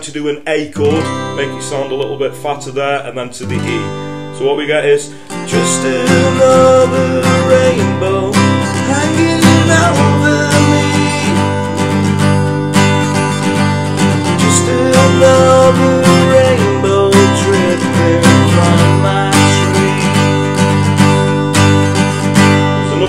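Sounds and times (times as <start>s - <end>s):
acoustic guitar strumming: 0.0s - 23.0s.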